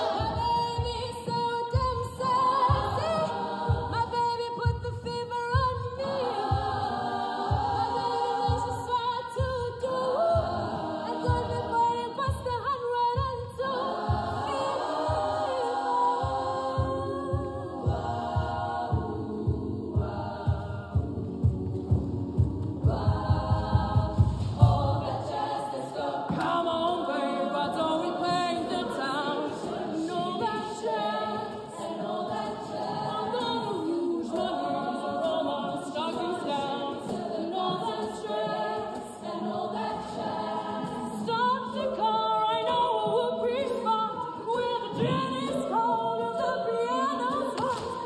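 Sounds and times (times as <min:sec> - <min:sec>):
low beats: 0:00.0 - 0:35.4
women's choir singing: 0:00.0 - 0:48.0.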